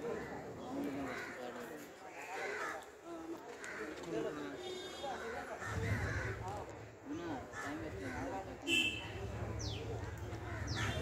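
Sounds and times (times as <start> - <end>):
crowd chatter: 0.0 - 11.0
crow cawing: 1.0 - 1.4, 2.1 - 2.9, 5.2 - 6.5, 7.5 - 8.3.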